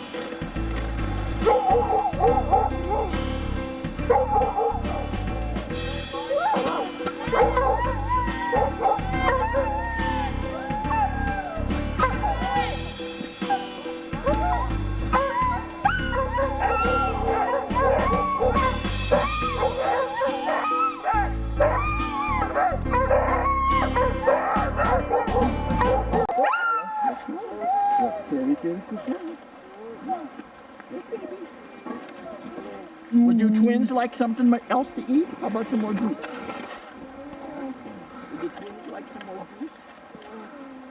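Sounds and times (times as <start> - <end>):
sled dogs yipping barking and howling: 1.3 - 3.2, 4.1 - 29.1.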